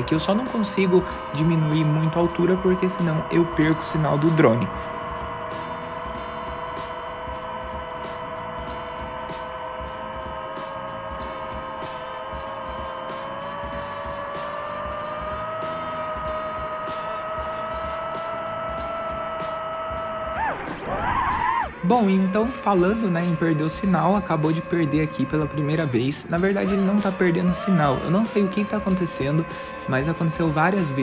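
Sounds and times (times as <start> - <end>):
background music beat: 0.0 - 31.0
drone propellers whining: 0.0 - 31.0.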